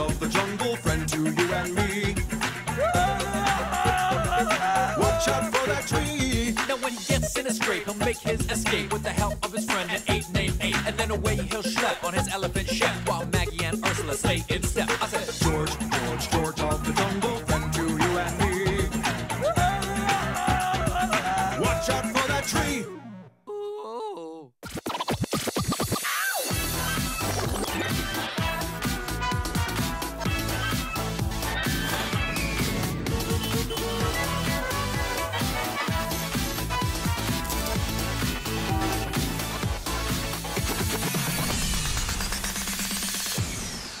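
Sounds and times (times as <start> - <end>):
rapid percussion: 0.0 - 22.8, 24.6 - 44.0
cartoon theme music: 0.0 - 23.4, 26.0 - 44.0
turntable scratching: 24.6 - 44.0.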